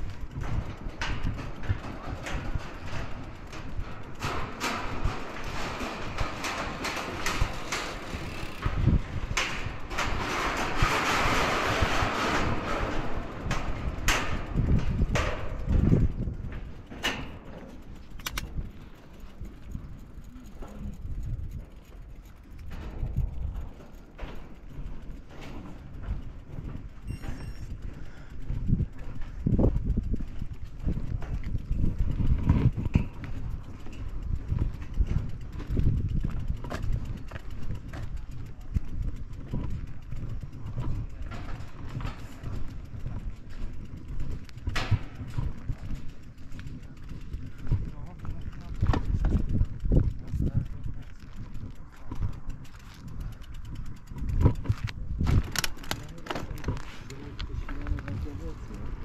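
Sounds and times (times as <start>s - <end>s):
bicycle tyres rattling on metal mesh: 0.0s - 59.0s
low uneven rumble: 0.0s - 59.0s.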